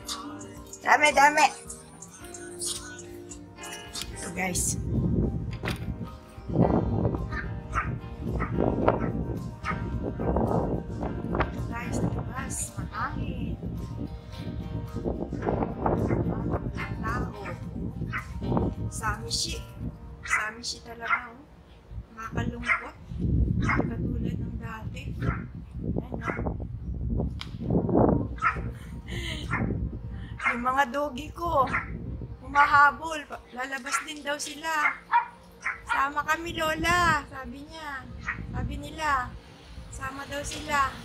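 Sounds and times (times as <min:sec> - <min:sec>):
background music: 0:00.0 - 0:26.8, 0:27.6 - 0:41.0
dog barking: 0:07.3 - 0:09.9, 0:16.0 - 0:18.3, 0:20.2 - 0:21.4, 0:22.6 - 0:23.0, 0:23.6 - 0:23.9, 0:25.2 - 0:25.5, 0:28.4 - 0:28.7, 0:30.4 - 0:30.7, 0:31.6 - 0:31.9, 0:33.9 - 0:34.2, 0:34.8 - 0:36.1, 0:38.2 - 0:38.4.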